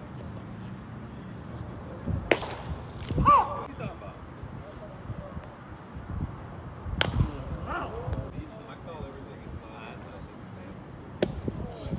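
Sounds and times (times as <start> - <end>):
baseball cracking into glove: 2.3 - 3.3, 7.0 - 7.4.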